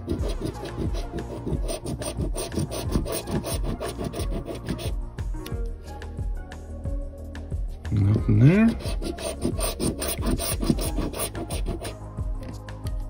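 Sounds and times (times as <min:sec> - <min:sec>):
coin scraping scratch-off ticket: 0:00.1 - 0:04.9, 0:08.7 - 0:11.9.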